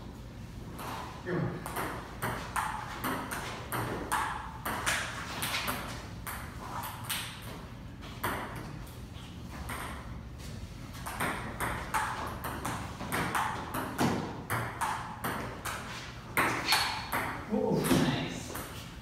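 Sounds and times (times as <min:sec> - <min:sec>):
ping pong ball hitting paddles: 0:01.5 - 0:08.9, 0:09.5 - 0:10.2, 0:10.9 - 0:18.9
ping pong ball bouncing on table: 0:01.6 - 0:07.5, 0:08.2 - 0:08.7, 0:09.6 - 0:10.1, 0:11.0 - 0:15.8, 0:16.4 - 0:18.8.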